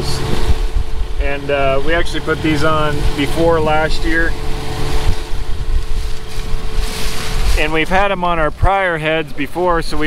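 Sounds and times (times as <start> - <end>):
combine engine idling: 0.0 - 10.0
wind buffeting microphone: 0.0 - 10.0.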